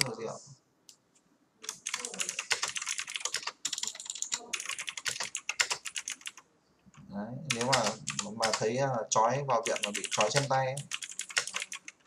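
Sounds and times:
typing on computer keyboard: 1.6 - 6.4, 7.5 - 8.7, 9.6 - 12.0.

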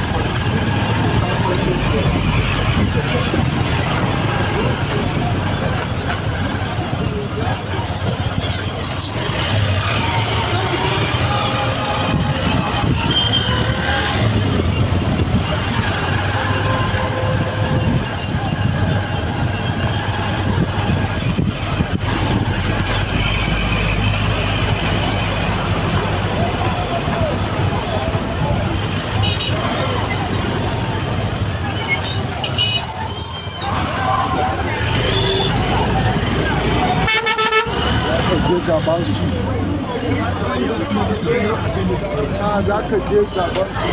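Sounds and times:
traffic engines rumbling: 0.0 - 43.9
vehicle horn pulsing blast: 37.0 - 37.8.

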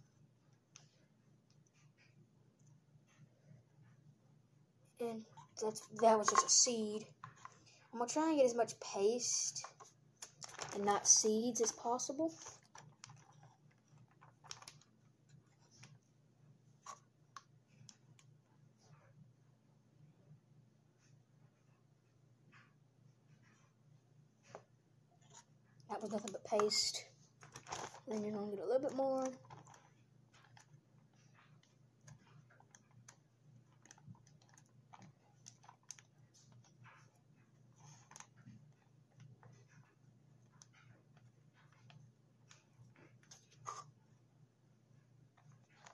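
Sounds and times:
plastic bag clicks and crinkles: 10.2 - 14.9, 26.0 - 30.7, 32.1 - 36.7, 37.8 - 38.6.

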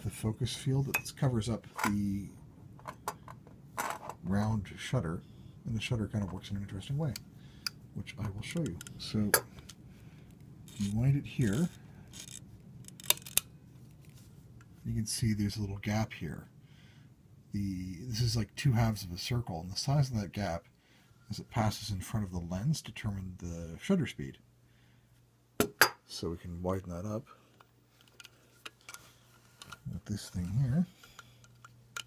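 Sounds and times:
camera shutter winding rasp: 12.1 - 13.4.

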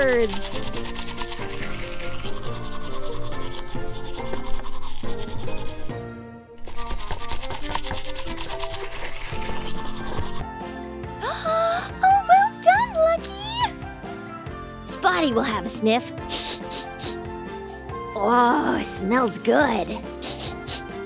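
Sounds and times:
toothbrush scrubbing over beans: 0.0 - 5.9, 6.6 - 10.4
background music: 0.0 - 21.0.

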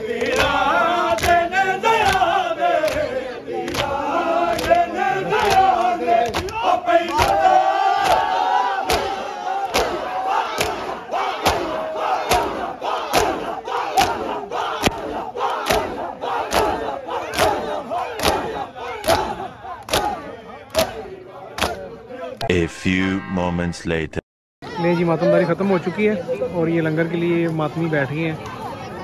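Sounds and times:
crowd of men calling out: 0.4 - 23.5
men slapping their chests: 2.0 - 8.2, 8.8 - 11.7, 14.0 - 16.8, 17.4 - 20.2, 20.8 - 21.0, 21.6 - 21.8.

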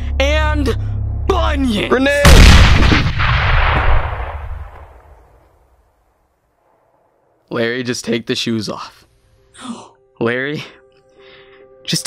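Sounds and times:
explosion boom and rumble: 2.2 - 5.3.

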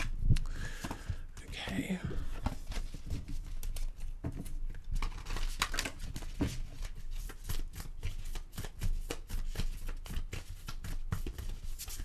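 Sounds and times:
cards shuffled on a table: 0.0 - 12.0.

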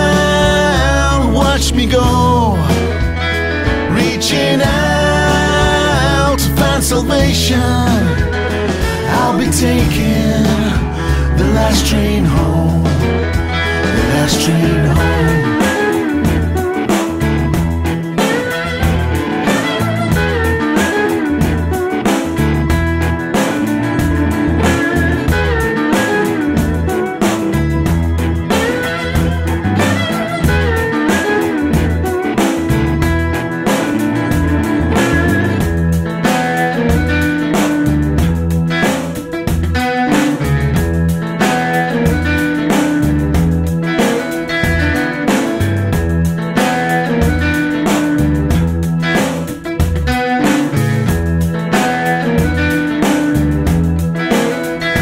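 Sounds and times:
blues-rock band playing: 0.0 - 55.0
guitar lead with bending notes: 0.0 - 55.0.

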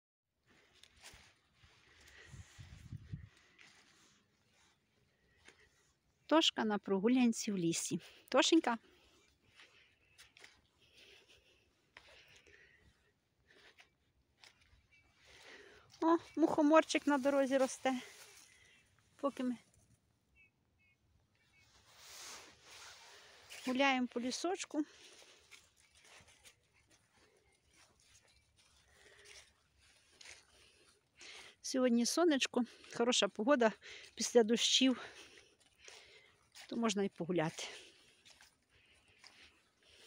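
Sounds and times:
footsteps on dry leaves: 0.6 - 5.9, 8.9 - 18.8, 21.8 - 31.6, 32.7 - 40.0
faint rustles and ticks: 22.7 - 40.0.

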